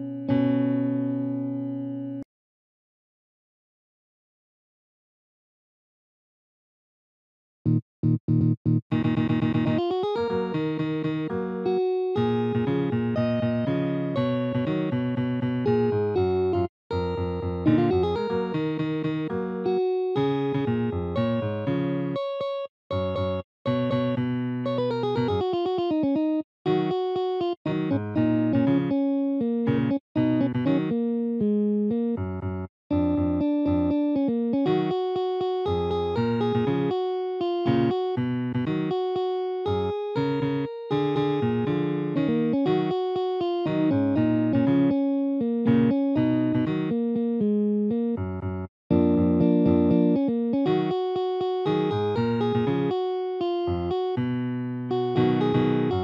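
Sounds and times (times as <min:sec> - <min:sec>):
synthesized guitar notes and chords: 0:00.0 - 0:02.2, 0:07.7 - 0:56.0.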